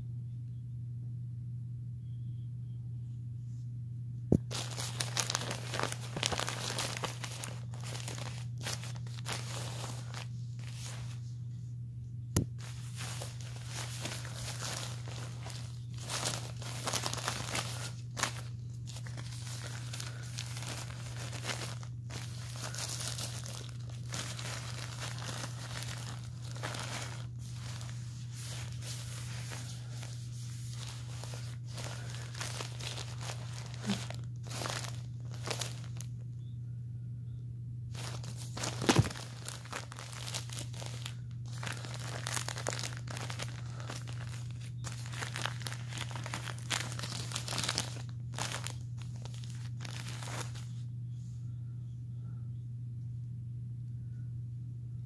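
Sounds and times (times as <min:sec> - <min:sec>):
plastic diaper backing crinkling: 0:04.3 - 0:11.6, 0:12.3 - 0:36.2, 0:37.9 - 0:50.9.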